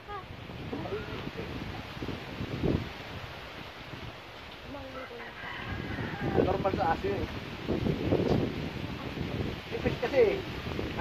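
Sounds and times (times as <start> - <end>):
outdoor background noise: 0.0 - 11.0
rooster crowing: 4.9 - 6.9.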